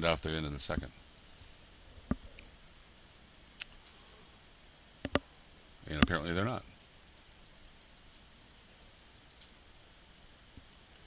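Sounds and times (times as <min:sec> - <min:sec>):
faint rapid computer clicking: 0:01.0 - 0:01.3, 0:07.0 - 0:09.6, 0:10.6 - 0:11.0.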